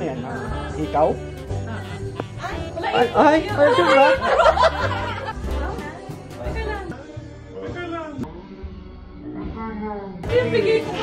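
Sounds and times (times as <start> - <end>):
group of people talking: 0.0 - 8.3, 10.2 - 11.0
background music with bass line: 0.0 - 11.0.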